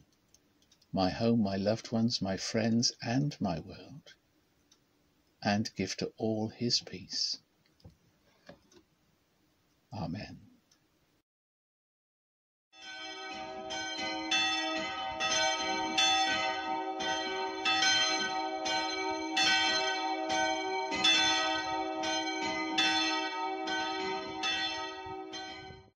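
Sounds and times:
church bells ringing: 12.8 - 25.9.

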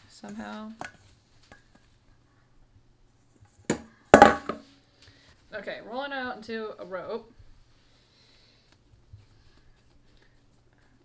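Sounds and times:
dough knocking on wooden counter: 3.7 - 4.6.

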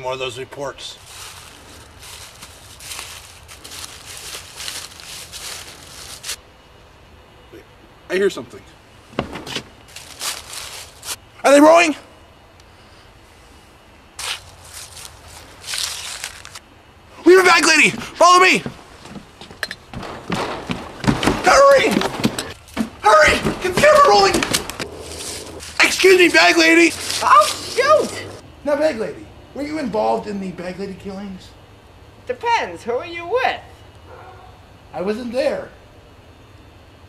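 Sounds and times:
low background noise: 0.0 - 37.0
irregular rustling: 1.0 - 6.4, 9.1 - 11.2, 14.2 - 16.6, 17.6 - 28.4.

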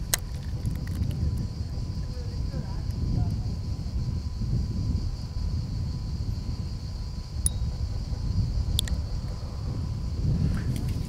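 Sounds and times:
wind rumble: 0.0 - 11.0.

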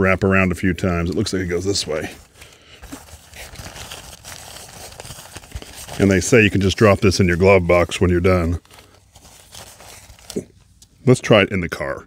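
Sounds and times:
fabric sunshade crinkling: 0.8 - 10.8.

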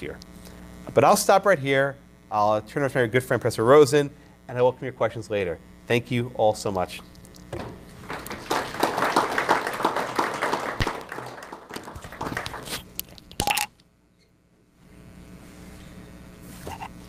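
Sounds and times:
audience applauding: 8.0 - 13.0.

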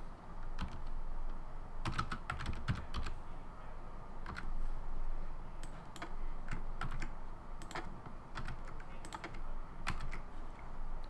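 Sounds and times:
typing on computer keyboard: 0.5 - 1.0, 1.8 - 3.2, 4.2 - 4.5, 5.6 - 10.3.

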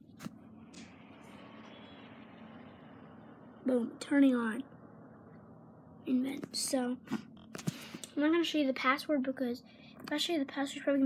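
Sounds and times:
laptop fan whirring: 0.0 - 11.0.

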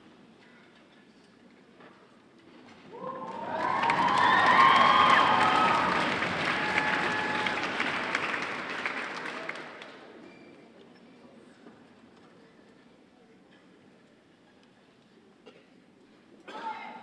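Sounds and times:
shouted whoops: 2.9 - 7.9
audience applauding and cheering: 2.9 - 10.0.

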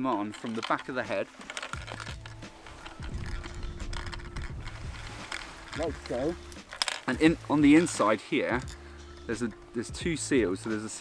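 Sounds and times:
mask strap clicks and rustles: 0.0 - 9.9
low uneven rumble: 1.8 - 8.0.

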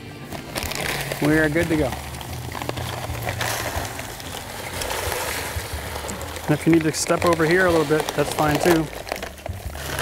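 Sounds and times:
dry concrete mix pouring: 0.1 - 10.0.

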